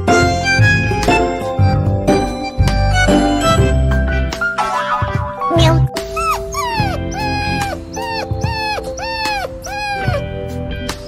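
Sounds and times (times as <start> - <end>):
background music: 0.0 - 11.0
puppy whimpering: 5.5 - 10.4.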